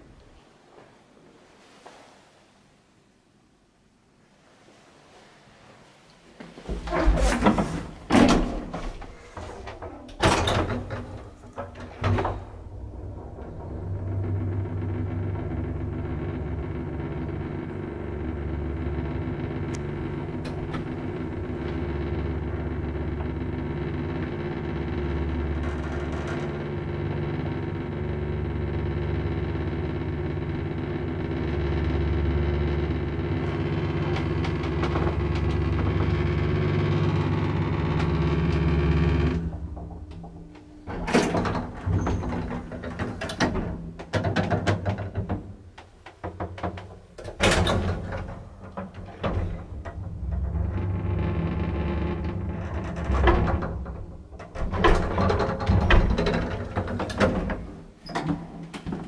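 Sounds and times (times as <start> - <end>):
elevator doors sliding open: 6.7 - 59.0
elevator hum and rumble: 6.7 - 59.0
elevator doors knocking shut: 52.1 - 59.0.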